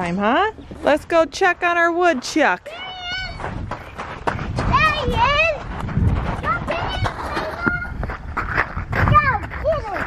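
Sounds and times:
footsteps running on gravel: 1.2 - 10.0
child calling: 2.7 - 3.5.

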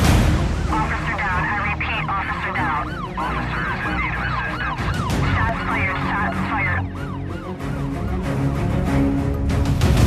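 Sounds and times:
siren yelp: 0.7 - 9.0.

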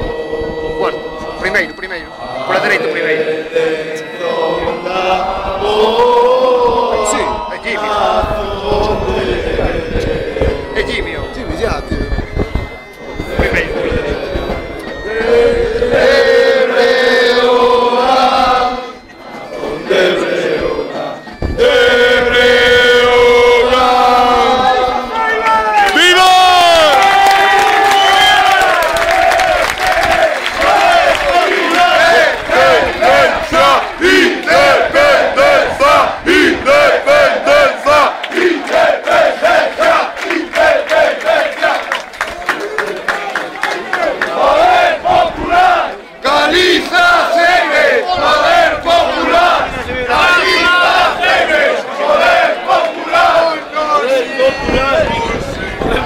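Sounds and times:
stadium crowd chanting: 0.0 - 11.1, 12.9 - 56.0.

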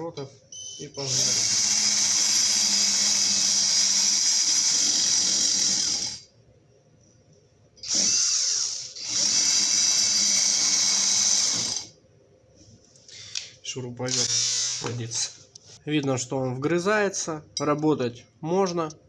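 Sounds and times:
drill burr grinding into steel: 14.1 - 15.1.

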